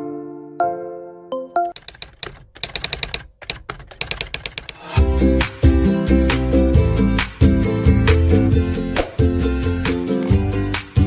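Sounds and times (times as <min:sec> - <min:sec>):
keyboard typing clicks: 0:01.6 - 0:04.9, 0:10.2 - 0:10.4.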